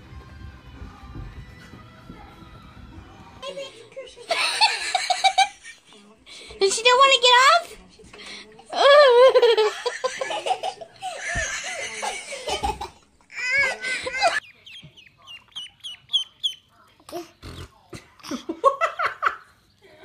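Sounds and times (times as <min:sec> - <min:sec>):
small bird chirping: 0:14.4 - 0:16.7.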